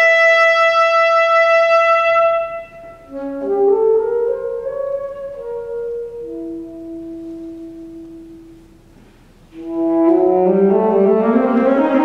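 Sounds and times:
saxophone and band sustained notes: 0.0s - 12.0s.

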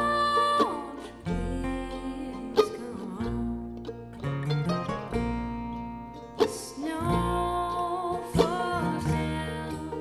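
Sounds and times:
woman singing: 0.0s - 4.7s, 6.4s - 10.0s
acoustic string band playing: 0.0s - 10.0s.

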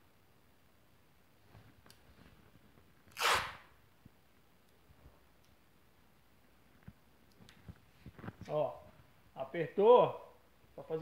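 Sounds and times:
masking tape ripped off roll: 3.1s - 3.8s.

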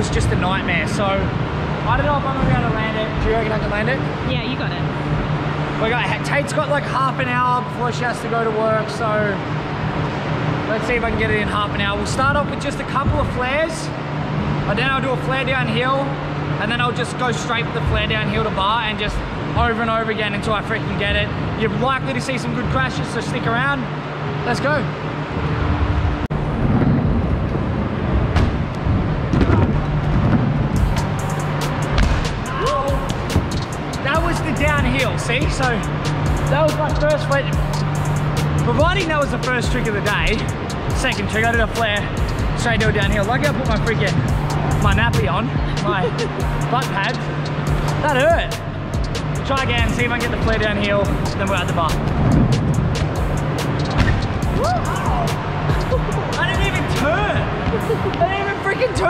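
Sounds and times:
heavy low surge: 24.0s - 59.0s
music with steady beat: 30.6s - 58.3s.

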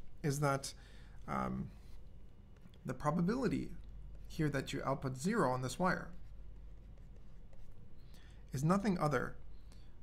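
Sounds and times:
steady low hum: 0.0s - 10.0s
stylus scratching on tablet: 1.7s - 8.0s.

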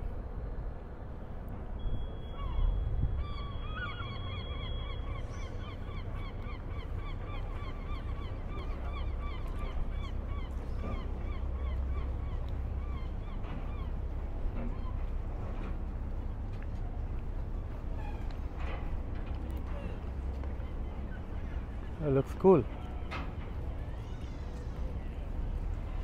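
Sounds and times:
low steady rumble: 0.0s - 22.0s
bird calling repeated notes: 2.0s - 9.5s.

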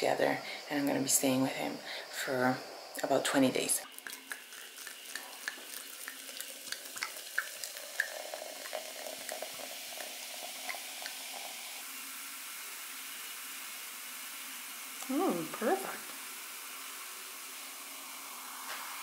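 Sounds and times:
crackling fizz of bubbles: 0.0s - 19.0s
fizzy drink pouring: 3.0s - 19.0s.

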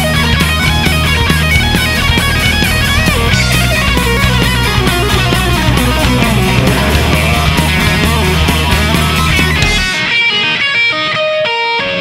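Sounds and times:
electric guitar single notes: 0.0s - 12.0s.

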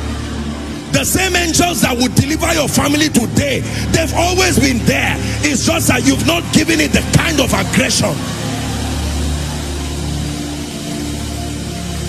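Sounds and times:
soft music with low chords: 0.0s - 12.0s.

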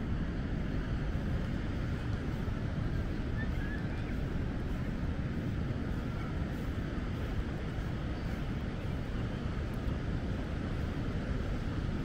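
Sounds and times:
surf washing: 0.0s - 12.0s
wind buffeting microphone: 0.0s - 12.0s.

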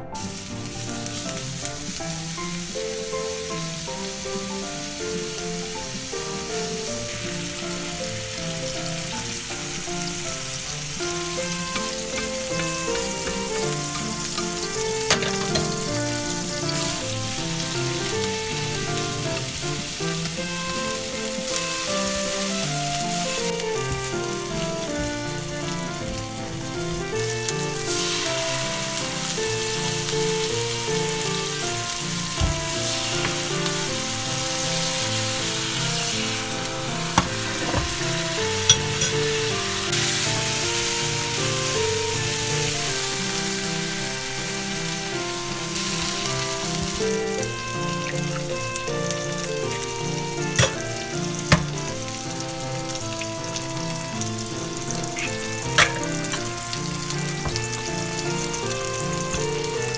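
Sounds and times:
food sizzling in oil: 0.2s - 59.9s
utensils clicking on pan: 10.9s - 20.6s, 32.9s - 33.8s, 36.0s - 39.5s, 50.5s - 52.0s, 55.2s - 57.8s.

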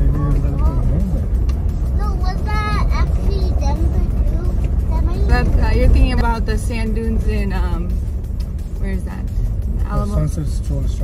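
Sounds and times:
car cabin rumble: 0.0s - 11.0s
people talking: 2.0s - 8.0s, 9.8s - 11.0s.

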